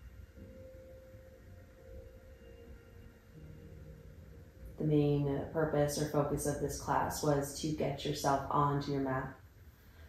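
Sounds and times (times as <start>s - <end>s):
lower tone: 0.0s - 9.3s
faint steady hum: 0.0s - 10.0s.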